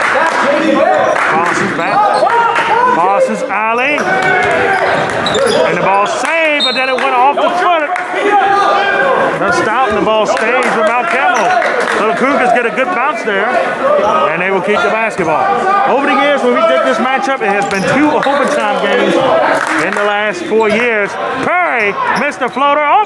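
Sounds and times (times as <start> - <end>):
voices echoing in gym: 0.0 - 23.0.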